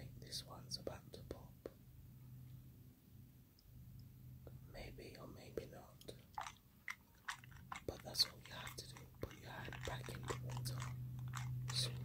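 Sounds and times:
faint steady low hum: 0:00.0 - 0:12.0
wet clicks and squelches: 0:06.0 - 0:12.0.

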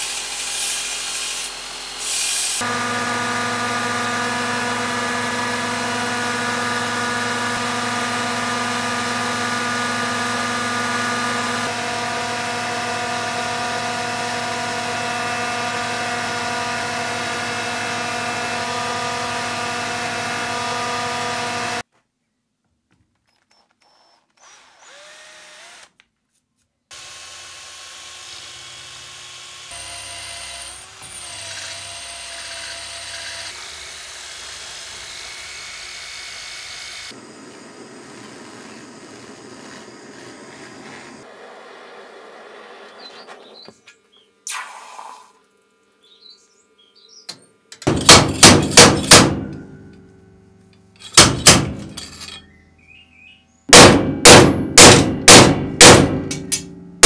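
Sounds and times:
drill boring into metal: 0:24.4 - 0:25.9, 0:26.9 - 0:41.3
ringing hammer blows on metal: 0:47.8 - 0:52.6, 0:53.7 - 0:57.0.

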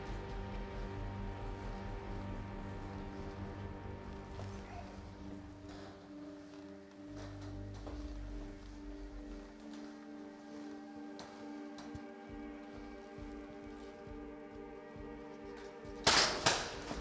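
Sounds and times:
droning background music: 0:00.0 - 0:17.0.

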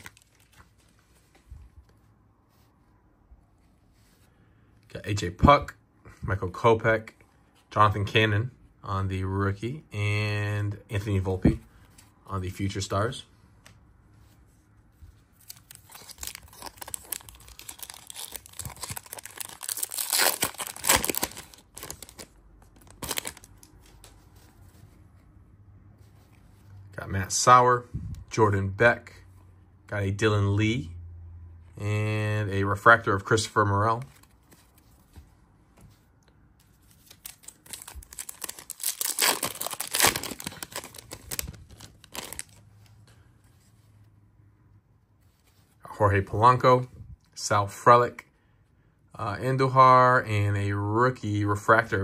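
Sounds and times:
cards being handled: 0:00.0 - 0:02.7, 0:15.1 - 0:25.3, 0:34.0 - 0:43.6.

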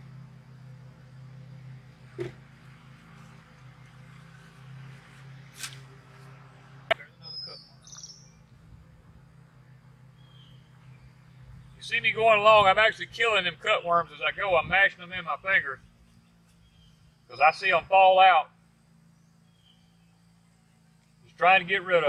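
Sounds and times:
low steady hum: 0:00.0 - 0:22.0
fork scraping wet soil: 0:05.5 - 0:05.9
bird chirping: 0:06.9 - 0:08.6, 0:09.5 - 0:12.1, 0:15.8 - 0:17.6, 0:19.1 - 0:21.1.

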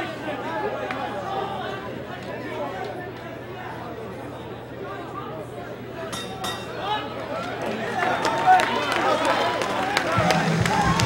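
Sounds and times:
crowd shouting and cheering: 0:00.0 - 0:05.3, 0:06.0 - 0:11.0.

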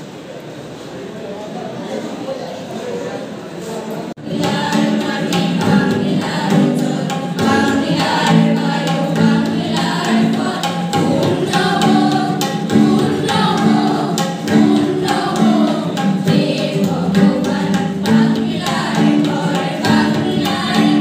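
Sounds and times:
children singing in chorus: 0:04.2 - 0:21.0.

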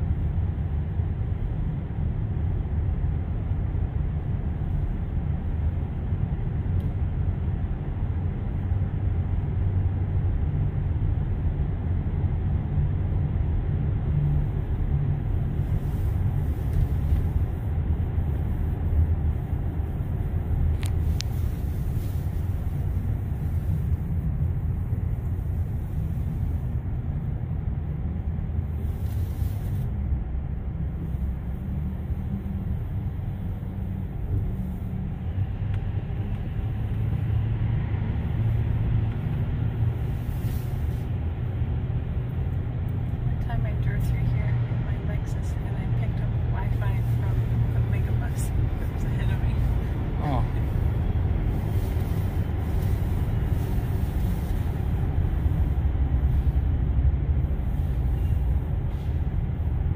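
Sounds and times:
road rumble and tyre noise: 0:00.0 - 0:59.9
surrounding traffic: 0:00.0 - 0:59.9.

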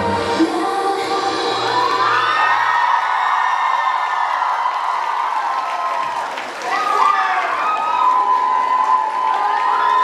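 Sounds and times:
audience cheering and screaming: 0:01.2 - 0:10.0.

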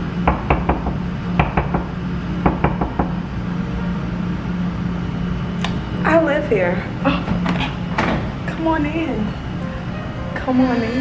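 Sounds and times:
knuckles knocking on door: 0:00.2 - 0:03.2.

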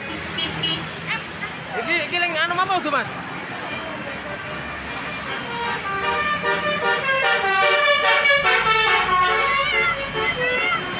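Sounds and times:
bus engine: 0:00.0 - 0:10.9
musical air horn melody: 0:05.5 - 0:10.3.

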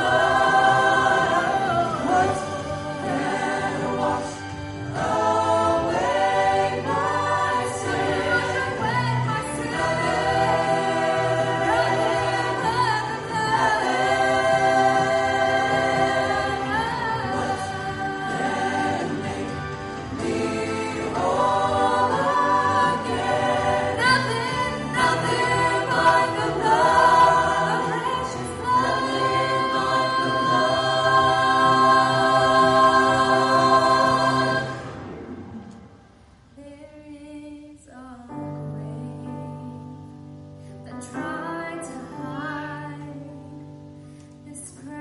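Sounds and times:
vocal ensemble singing in harmony: 0:00.0 - 0:45.0.

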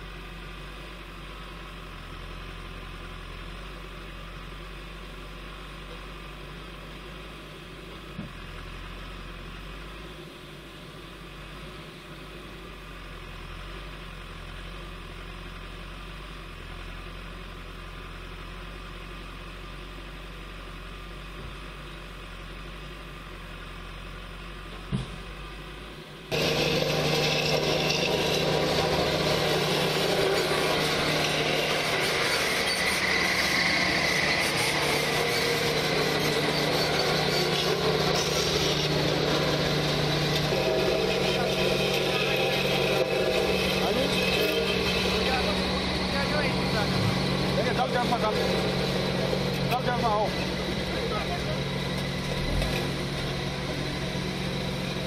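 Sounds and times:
diesel machinery idling: 0:00.0 - 0:55.0
road roller rolling over gravel: 0:00.0 - 0:55.0.

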